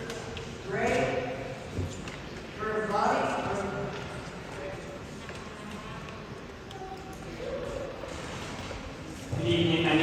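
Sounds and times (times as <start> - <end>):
steady room hum: 0.0 - 10.0.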